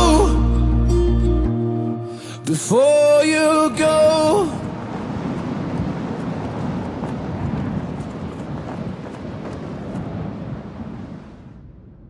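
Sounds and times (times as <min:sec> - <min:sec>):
wind and road noise from car: 0:03.8 - 0:11.6.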